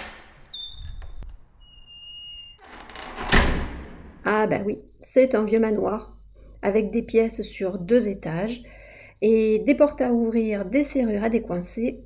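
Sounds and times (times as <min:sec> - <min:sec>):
door hinge squeaking: 0:00.0 - 0:03.7
door click: 0:02.6 - 0:04.2
heavy door thud: 0:02.6 - 0:04.3.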